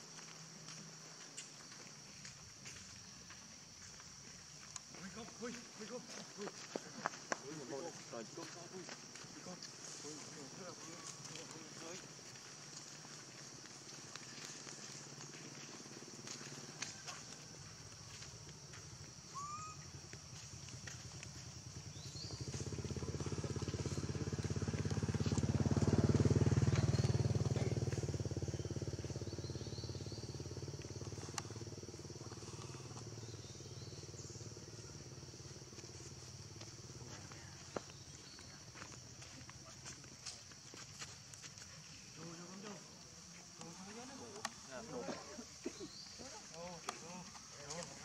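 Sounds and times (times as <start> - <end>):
vehicle engine passing by: 22.2 - 36.2.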